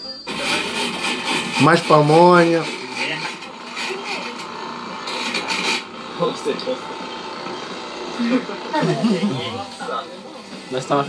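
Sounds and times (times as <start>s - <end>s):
corn rasping against grater: 0.4s - 7.0s.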